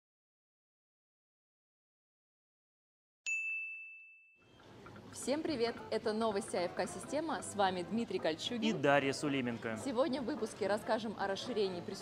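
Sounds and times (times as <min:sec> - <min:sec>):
bell-like ding: 0:03.3 - 0:04.5.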